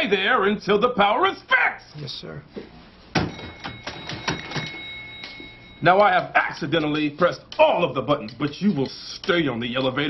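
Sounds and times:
thin steady high tone: 3.2 - 6.8.

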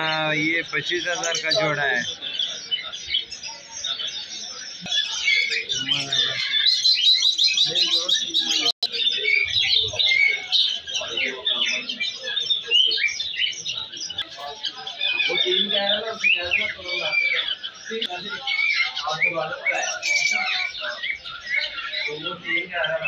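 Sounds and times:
small birds chirping: 0.0 - 23.0.

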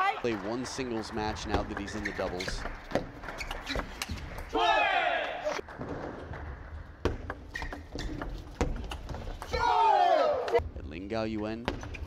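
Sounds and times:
person shouting: 9.5 - 10.6.

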